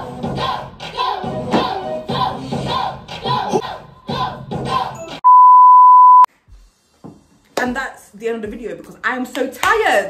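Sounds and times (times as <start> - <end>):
steady pure beep: 5.2 - 6.3.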